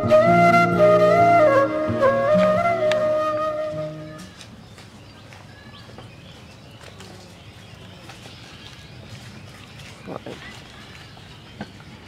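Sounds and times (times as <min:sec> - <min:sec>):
footsteps on leafy dirt path: 0:03.8 - 0:12.0.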